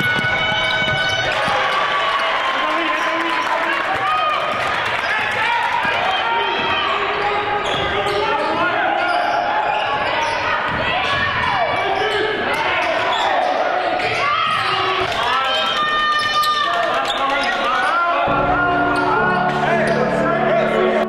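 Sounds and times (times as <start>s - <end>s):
basketball bouncing on wooden floor: 0.0s - 1.7s
voices in gym: 2.6s - 21.0s
music: 17.9s - 21.0s.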